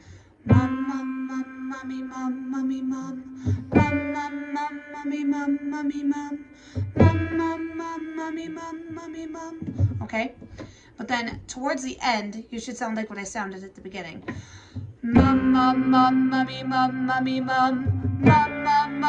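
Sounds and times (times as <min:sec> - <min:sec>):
woman singing vocal warm-up: 0:00.0 - 0:10.4, 0:14.3 - 0:19.0.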